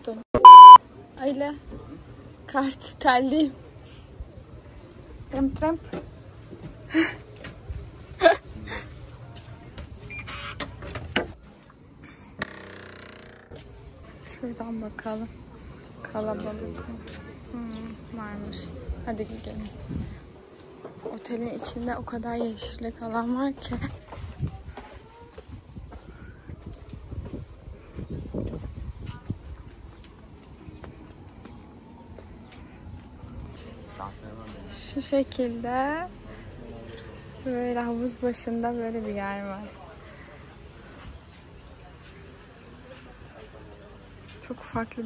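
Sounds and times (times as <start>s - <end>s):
faint outdoor background: 0.0s - 45.0s
door creak: 10.1s - 11.4s, 12.4s - 13.6s.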